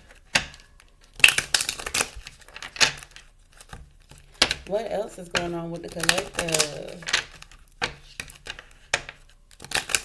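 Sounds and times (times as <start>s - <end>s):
cards shuffling on wooden table: 5.3s - 10.0s.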